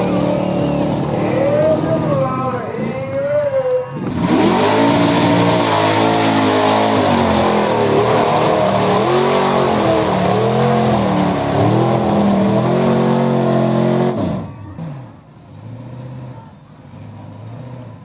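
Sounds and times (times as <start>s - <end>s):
truck engine revving hard: 0.0s - 3.1s, 3.9s - 18.0s.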